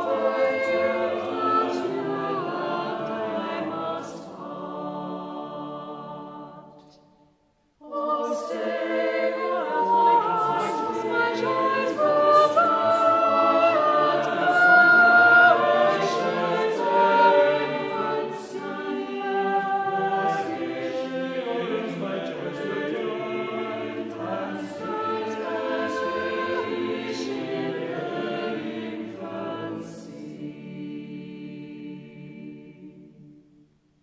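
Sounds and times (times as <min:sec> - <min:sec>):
choir singing a cappella: 0:00.0 - 0:33.8.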